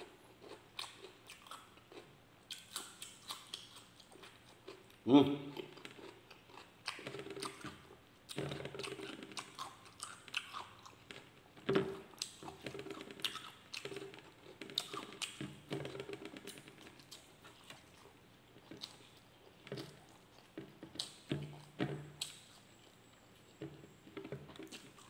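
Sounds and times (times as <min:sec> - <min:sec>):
person chewing food: 0:00.0 - 0:25.0.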